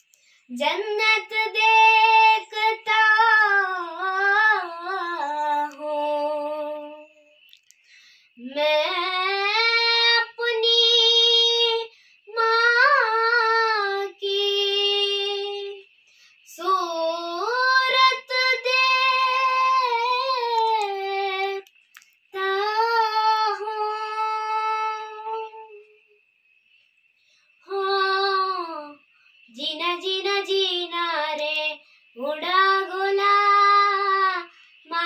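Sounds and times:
girl singing unaccompanied: 0.0s - 7.5s, 8.4s - 26.2s, 27.6s - 35.0s.

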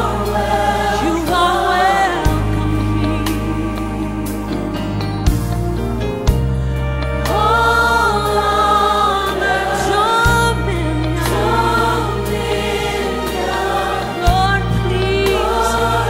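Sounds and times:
choir singing slow worship song: 0.0s - 16.0s
low bass notes: 0.0s - 16.0s.

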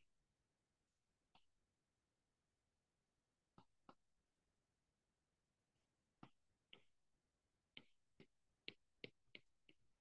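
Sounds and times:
stylus tapping on glass screen: 7.7s - 10.0s.

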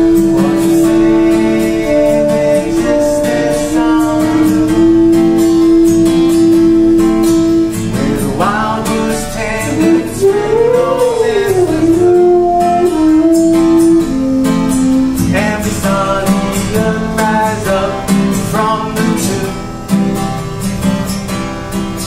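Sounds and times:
long held melody notes: 0.0s - 21.7s
acoustic guitar strumming: 0.0s - 22.0s.

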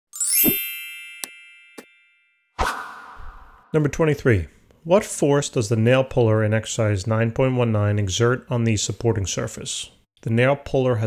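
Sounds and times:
bell-like chime with low thump: 0.2s - 3.8s
rising sweep: 2.6s - 3.8s.

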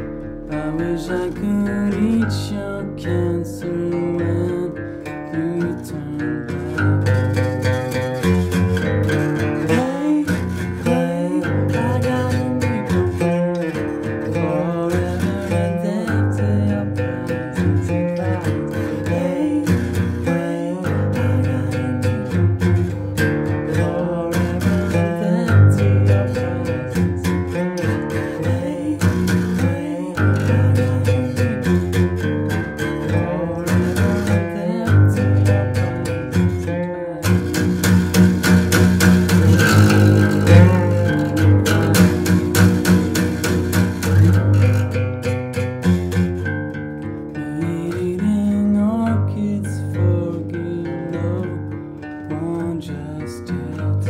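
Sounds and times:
man singing: 0.0s - 46.2s, 47.4s - 54.0s
acoustic guitar strumming: 0.0s - 54.0s.

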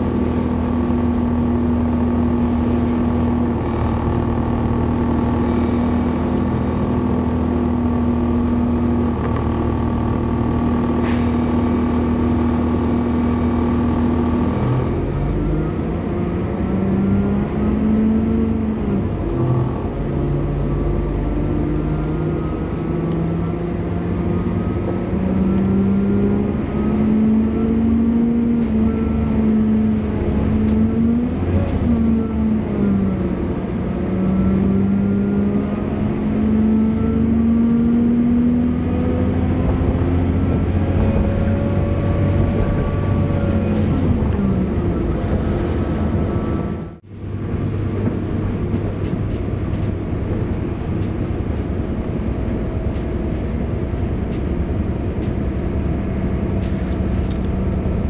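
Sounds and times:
train diesel engine running: 0.0s - 34.7s, 38.7s - 58.0s.

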